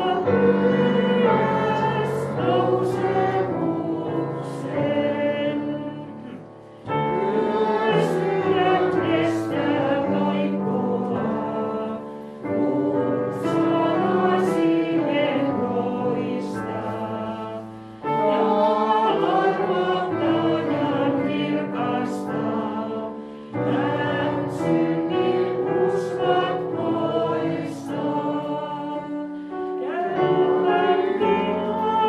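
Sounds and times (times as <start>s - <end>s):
voices singing a hymn: 0.0s - 32.0s.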